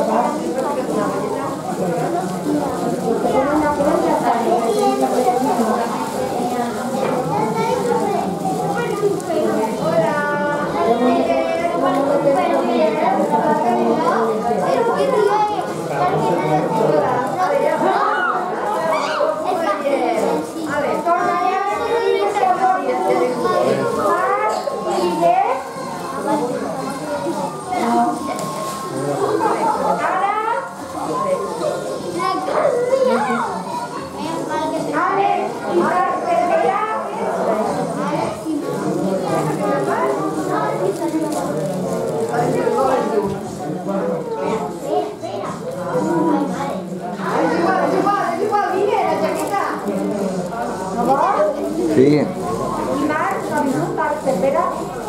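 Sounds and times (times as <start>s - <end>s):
overlapping voices talking: 0.0s - 55.0s.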